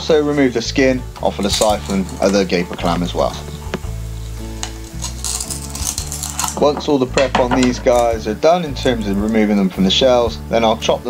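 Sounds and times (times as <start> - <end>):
onions frying in pot: 0.0 - 9.8
knife scraping clam shell: 4.6 - 6.8.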